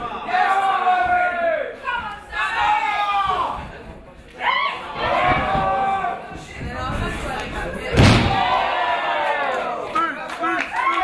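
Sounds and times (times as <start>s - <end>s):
crowd shouting: 0.0s - 3.6s, 4.4s - 6.4s, 7.9s - 9.8s
heavy thud on ring mat: 7.9s - 8.6s.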